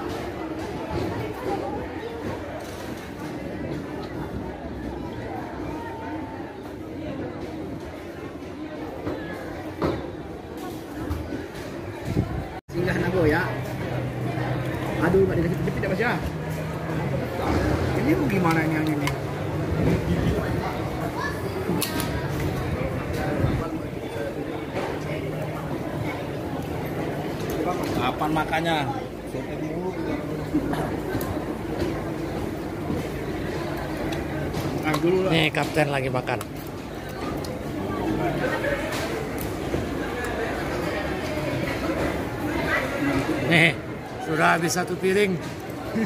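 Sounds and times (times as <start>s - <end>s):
chatter of voices: 0.0s - 46.0s.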